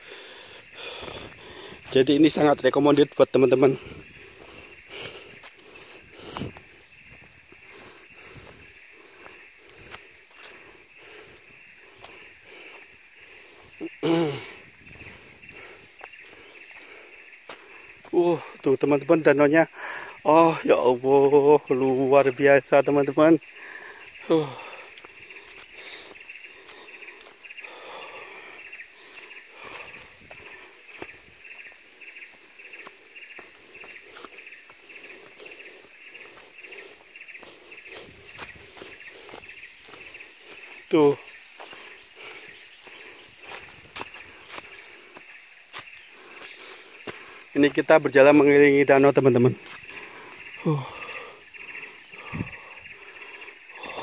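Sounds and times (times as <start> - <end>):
birds: 0.0 - 54.0
wildlife chorus: 0.0 - 54.0
footsteps on leaf litter: 37.4 - 48.5.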